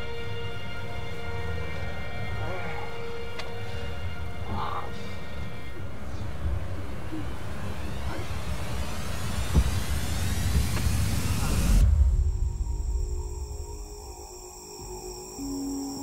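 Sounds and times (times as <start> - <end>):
steady high tones: 11.8 - 16.0.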